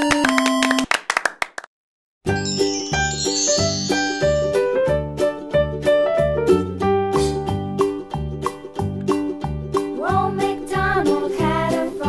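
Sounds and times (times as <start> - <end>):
people clapping: 0.0 - 1.7
electronic children's tune: 2.3 - 5.3.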